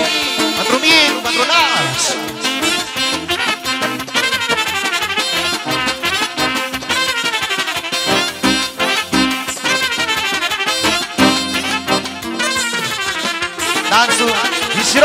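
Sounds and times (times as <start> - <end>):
brass band playing folk dance tune: 0.0 - 15.0.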